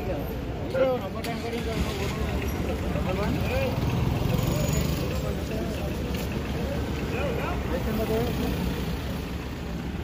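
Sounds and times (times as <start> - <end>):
vehicle engines rumbling: 0.0 - 10.0.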